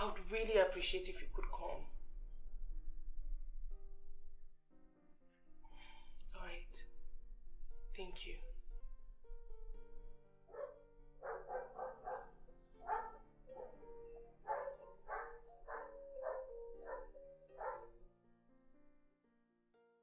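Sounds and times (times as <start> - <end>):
background music: 0.0 - 19.0
dog barking: 10.5 - 17.9.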